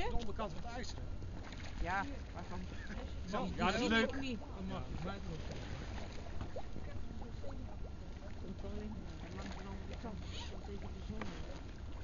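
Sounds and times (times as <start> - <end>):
faint voices: 2.2 - 12.0.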